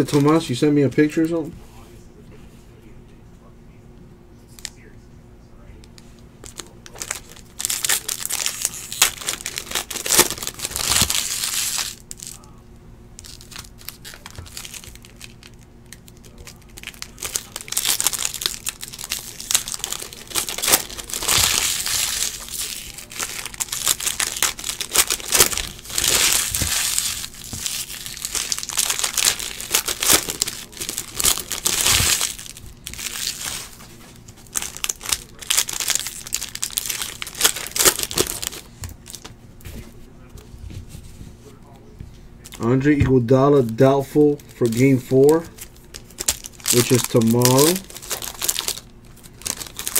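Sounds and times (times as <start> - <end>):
foil wrappers crinkling and tearing: 0.0 - 0.6, 6.0 - 12.6, 13.2 - 39.4, 42.4 - 49.9.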